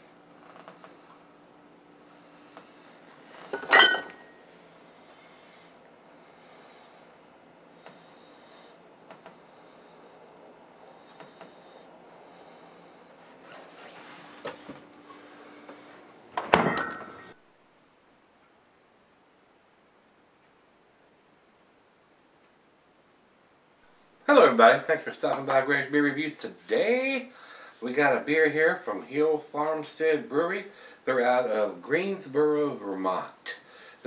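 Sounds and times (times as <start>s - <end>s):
glass bottles clinking: 3.5s - 4.4s, 16.6s - 17.4s
refrigerator door shutting: 16.4s - 17.2s.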